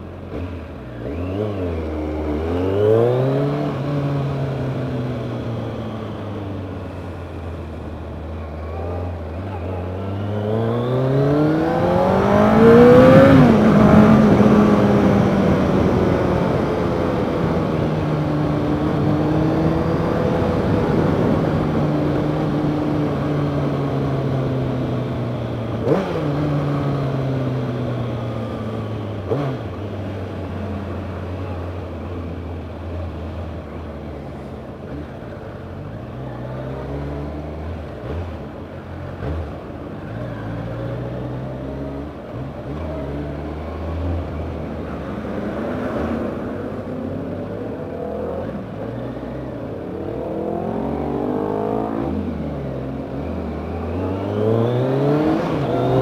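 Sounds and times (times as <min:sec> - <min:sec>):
motorcycle engine accelerating: 0:00.0 - 0:56.0.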